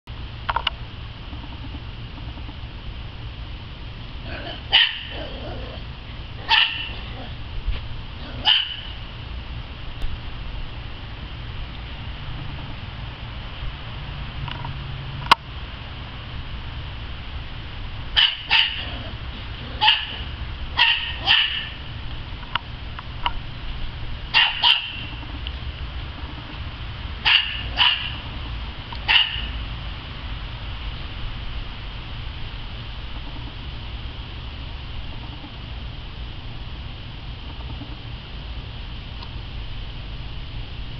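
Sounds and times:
small dog barking: 0:04.2 - 0:05.8, 0:06.4 - 0:07.4, 0:08.2 - 0:09.0, 0:18.2 - 0:21.8, 0:24.3 - 0:25.2, 0:27.2 - 0:28.2, 0:29.0 - 0:29.6.

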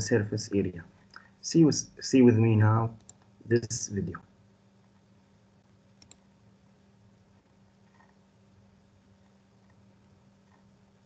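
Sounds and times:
faint low steady hum: 0:00.0 - 0:11.0
computer mouse clicks: 0:03.0 - 0:03.3, 0:05.9 - 0:06.3, 0:07.8 - 0:08.2, 0:10.4 - 0:10.7.

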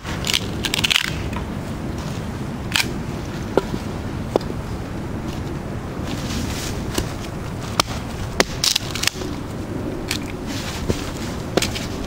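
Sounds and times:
dry wood cracking and splintering: 0:00.0 - 0:01.4, 0:02.7 - 0:03.7, 0:06.0 - 0:12.0.

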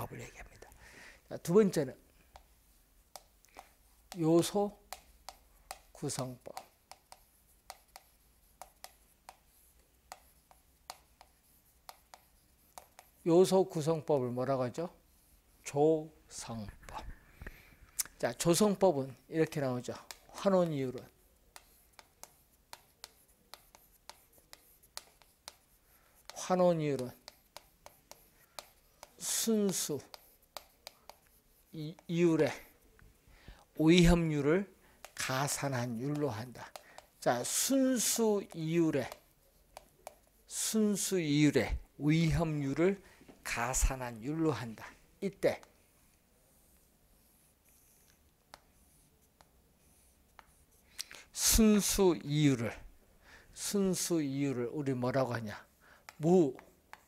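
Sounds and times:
chalk ticking on chalkboard: 0:01.4 - 0:15.7, 0:18.2 - 0:33.0, 0:33.7 - 0:45.8, 0:46.5 - 0:52.8, 0:53.6 - 0:57.0.

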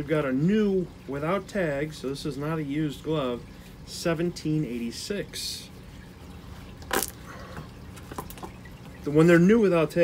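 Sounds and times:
leather glove cracking: 0:06.9 - 0:07.2.

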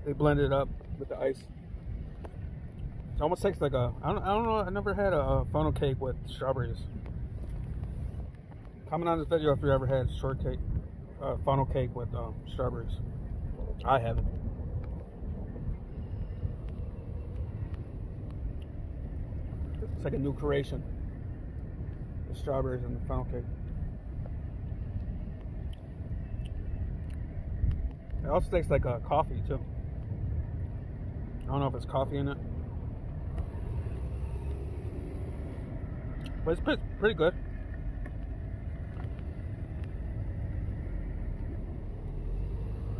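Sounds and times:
low outdoor rumble: 0:00.0 - 0:42.9.

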